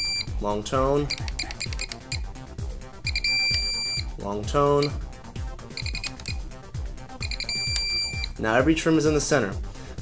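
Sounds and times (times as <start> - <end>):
radio transmitter beeps: 0.0 - 0.4, 1.0 - 2.3, 3.0 - 4.1, 5.7 - 6.4, 7.2 - 8.4
background music with steady beat: 0.0 - 10.0.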